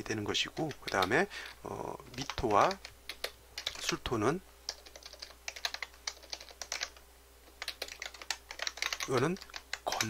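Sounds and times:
computer keyboard typing: 0.5 - 1.2, 2.1 - 10.0.

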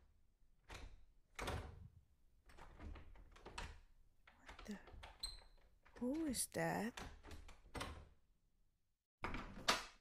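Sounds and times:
door rattling: 0.6 - 6.0, 6.9 - 8.2.

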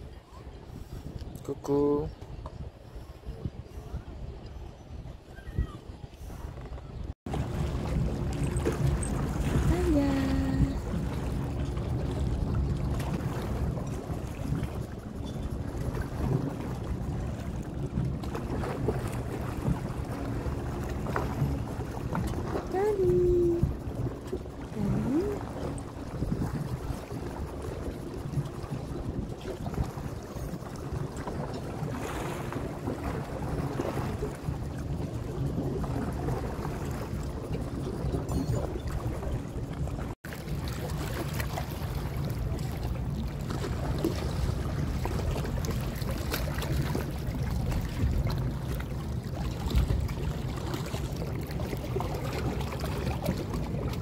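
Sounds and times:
wind rumbling on microphone: 0.0 - 54.0
pitched voice-like glides: 9.7 - 10.9, 22.7 - 23.7, 24.7 - 25.5.

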